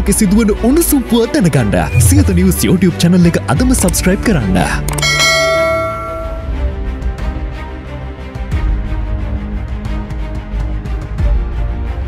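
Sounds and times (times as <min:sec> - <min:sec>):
outro music with low bass: 0:01.6 - 0:05.4
bell-like chime: 0:05.0 - 0:06.6.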